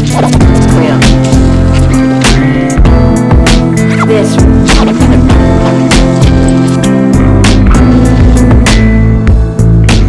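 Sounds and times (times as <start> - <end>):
sustained pitched notes: 0.0 - 9.2.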